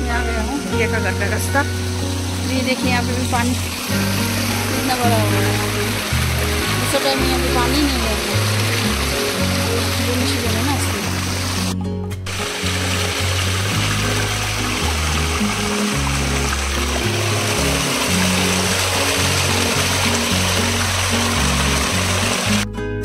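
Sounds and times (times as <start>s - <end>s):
stream cascading over rocks: 0.0s - 22.6s
background music with bass line: 0.0s - 23.0s.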